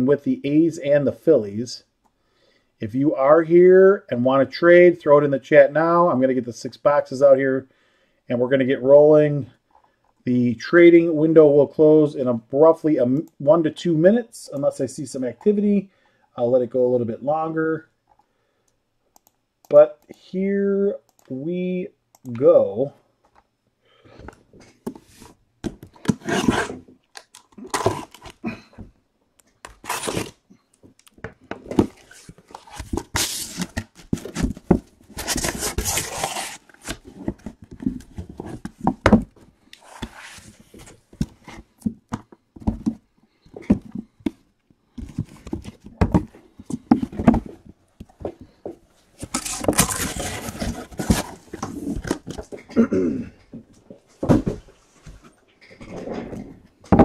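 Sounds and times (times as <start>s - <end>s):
cardboard scraping and tearing: 26.0s - 26.9s, 27.6s - 28.4s, 29.7s - 30.4s, 31.8s - 38.6s, 49.2s - 52.4s.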